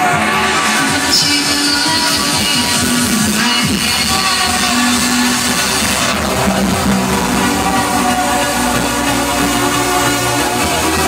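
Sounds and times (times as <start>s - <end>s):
trance music on sound system: 0.0s - 11.0s.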